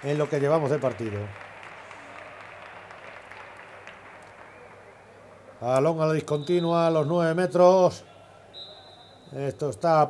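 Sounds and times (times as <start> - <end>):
applause: 0.0 - 5.6
crowd noise: 0.0 - 10.0.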